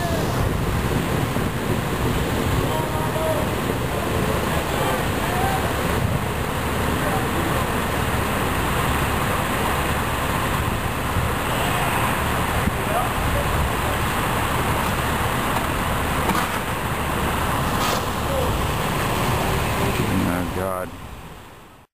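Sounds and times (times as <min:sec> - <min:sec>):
water rushing from hydrant: 0:00.0 - 0:21.9.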